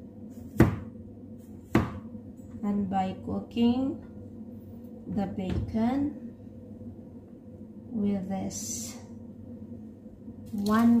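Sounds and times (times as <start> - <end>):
knife chopping on cutting board: 0.4 - 0.9, 1.5 - 2.1.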